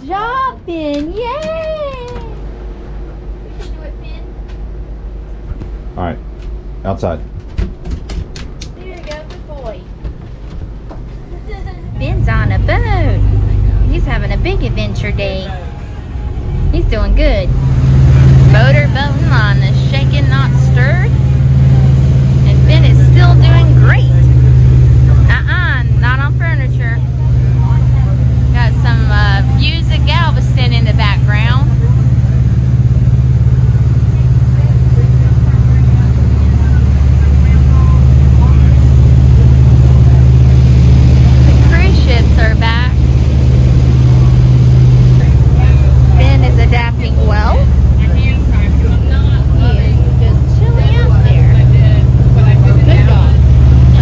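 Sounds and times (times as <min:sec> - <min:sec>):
outboard engine drone: 0:11.2 - 0:54.0.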